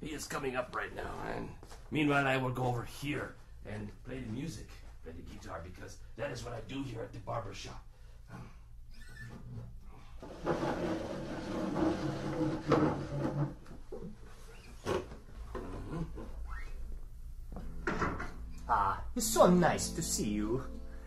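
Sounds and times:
door creaking open: 0:08.9 - 0:16.8.

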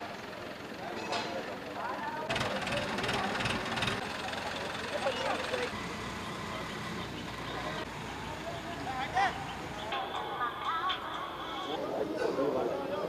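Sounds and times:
crane diesel engine running: 0:00.0 - 0:12.0
workers' voices: 0:00.5 - 0:13.0.

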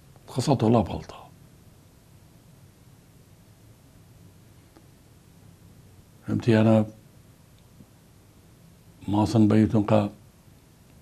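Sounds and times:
low steady hum: 0:00.0 - 0:11.0
man speaking: 0:00.3 - 0:01.3, 0:09.0 - 0:10.2.

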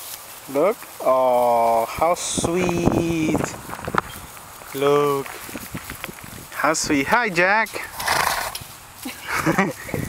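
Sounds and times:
donkey snorting: 0:07.8 - 0:08.6.

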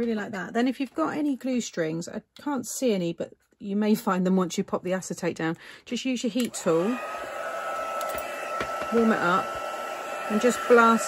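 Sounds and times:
heat gun whining and blowing: 0:06.4 - 0:11.0.

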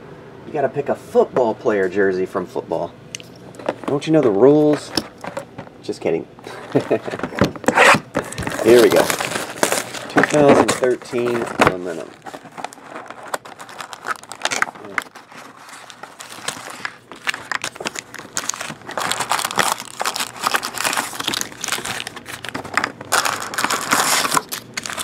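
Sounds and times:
cardboard rustles and clicks: 0:06.4 - 0:25.0
foil packs crinkling: 0:06.4 - 0:25.0.

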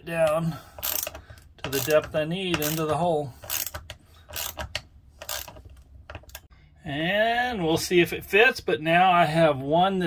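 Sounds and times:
ratchet wrench clicking: 0:00.8 - 0:06.4.

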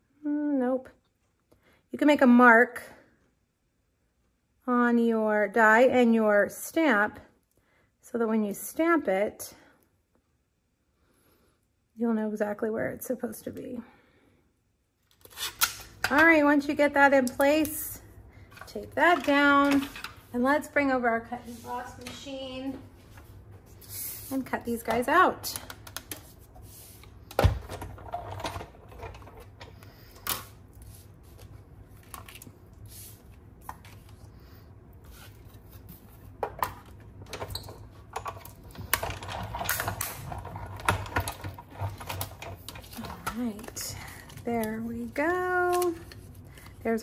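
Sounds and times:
tape being handled: 0:15.0 - 0:16.1.

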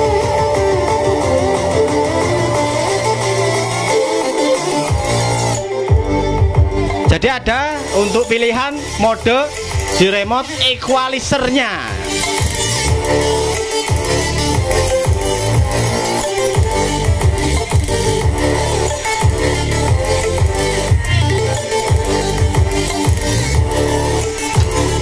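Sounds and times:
bass-heavy electronic dance music: 0:00.0 - 0:25.0.

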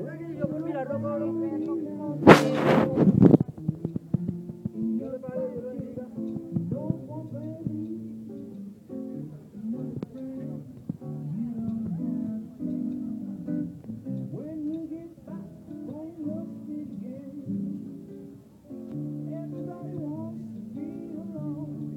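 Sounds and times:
plucked guitar music: 0:00.0 - 0:21.9.

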